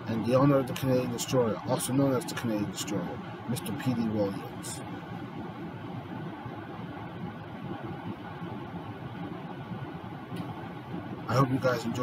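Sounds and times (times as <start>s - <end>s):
air conditioner hum and hiss: 0.0s - 12.0s.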